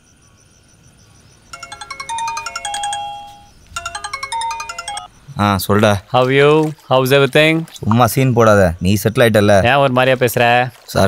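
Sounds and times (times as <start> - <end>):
mobile phone ringtone: 1.5 - 5.2.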